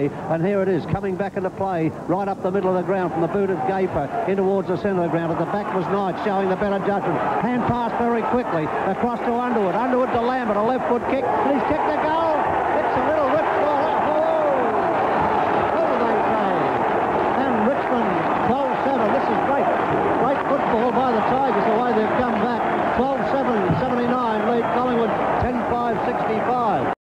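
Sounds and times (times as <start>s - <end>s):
football crowd cheering: 2.4s - 27.0s.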